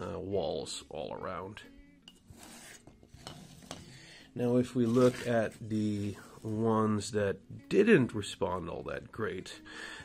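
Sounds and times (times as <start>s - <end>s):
light rubbing: 2.0s - 6.9s.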